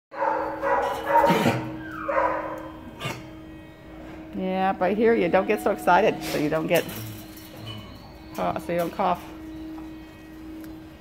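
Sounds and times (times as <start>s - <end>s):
dog barking and whining: 0.2s - 3.4s.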